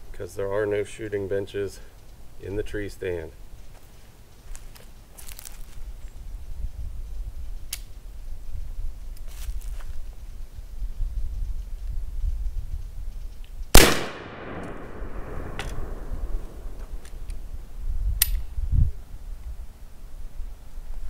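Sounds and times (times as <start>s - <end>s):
musket shot: 13.7s - 17.0s.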